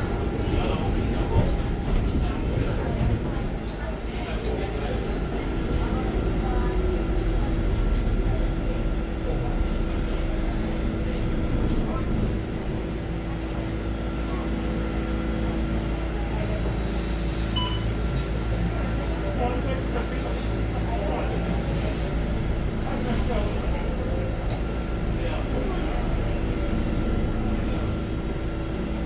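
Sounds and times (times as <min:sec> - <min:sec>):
road rumble: 0:00.0 - 0:17.4, 0:18.2 - 0:29.0
constant hum: 0:00.0 - 0:29.0
faint voices: 0:00.0 - 0:29.0
short beep: 0:17.6 - 0:17.9.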